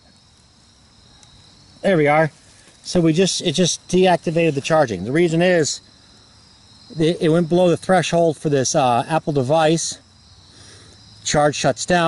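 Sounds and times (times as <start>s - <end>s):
crickets trilling: 0.0s - 12.0s
man speaking: 1.8s - 5.8s, 6.9s - 10.0s, 11.2s - 12.0s.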